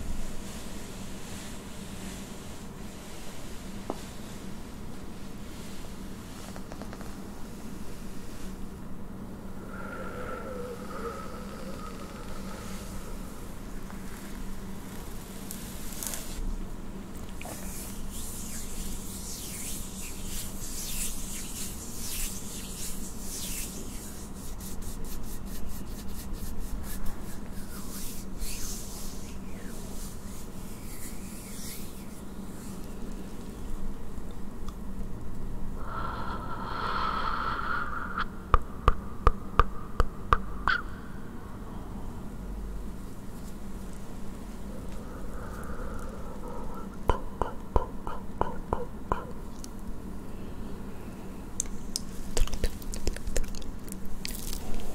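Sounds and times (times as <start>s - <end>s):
soft breathing into hands: 9.5s - 16.4s, 17.3s - 33.7s, 35.8s - 39.1s, 43.3s - 47.4s
hands rubbing together: 17.3s - 33.4s, 51.8s - 54.9s
sharp mouth clicks: 38.1s - 41.0s, 44.8s - 49.9s, 51.6s - 54.9s.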